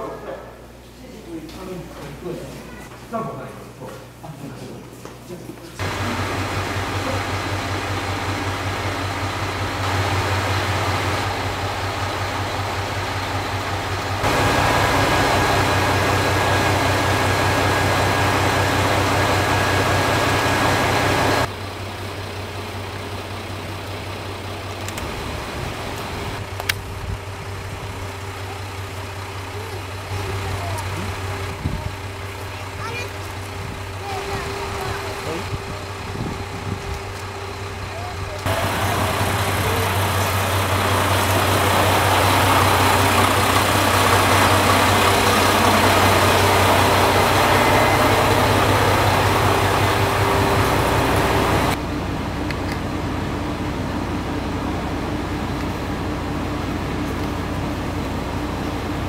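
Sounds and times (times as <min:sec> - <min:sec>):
diesel railcar engine idling: 0:05.8 - 0:59.0.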